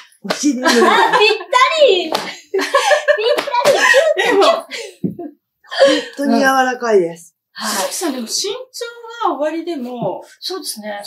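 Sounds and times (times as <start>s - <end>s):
sharp slaps: 0.2s - 0.6s, 2.0s - 2.4s, 3.3s - 4.0s
women talking: 0.2s - 2.4s, 3.1s - 5.2s, 5.9s - 11.0s
women laughing: 0.4s - 6.2s.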